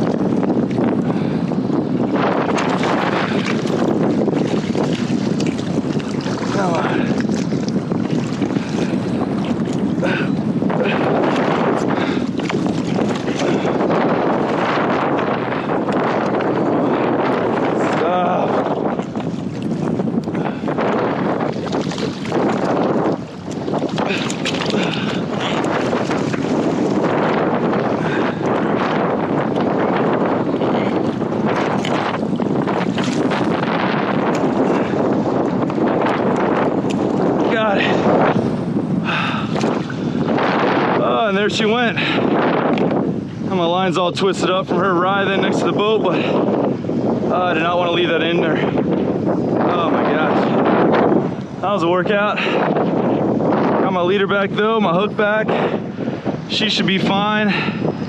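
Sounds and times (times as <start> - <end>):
water splashing: 0.0 - 42.9
wind buffeting microphone: 0.0 - 58.0.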